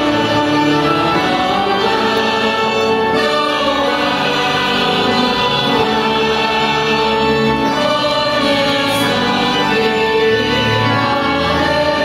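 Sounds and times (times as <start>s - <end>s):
choir singing: 0.0s - 12.0s
instrumental accompaniment: 0.0s - 12.0s.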